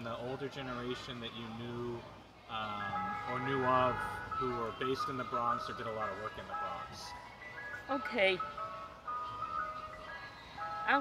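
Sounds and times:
woman speaking: 7.9 - 8.6, 9.3 - 11.0.

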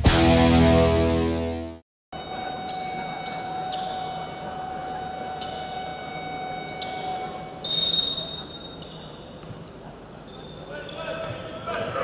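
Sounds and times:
indoor hall ambient noise: 2.2 - 12.0.

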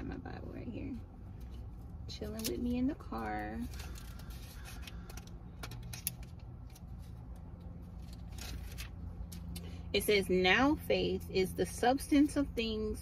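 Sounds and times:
low steady hum: 0.0 - 13.0
paper pages rustling: 3.6 - 9.6.

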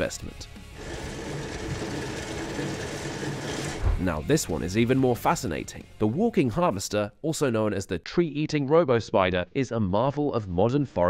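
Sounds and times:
trencher grinding gravel: 0.8 - 3.8
low thump: 3.8 - 4.1.

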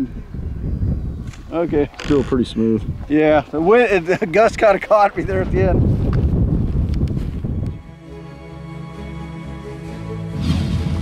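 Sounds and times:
wind buffeting microphone: 0.0 - 7.9.

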